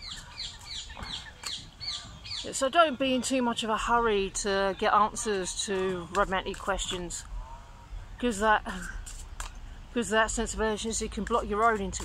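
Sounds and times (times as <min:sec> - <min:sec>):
parakeets calling: 0:00.0 - 0:02.7.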